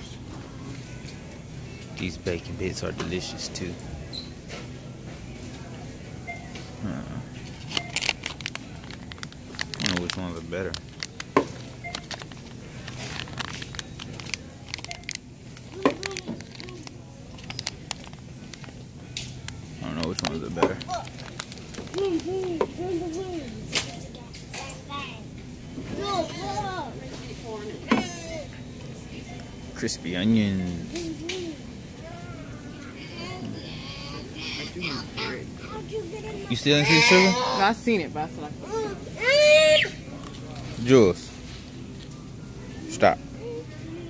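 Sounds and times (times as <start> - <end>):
steady low hum: 0.0 - 36.5
clicks and crackles: 7.6 - 22.6
murmured voices: 30.8 - 37.9.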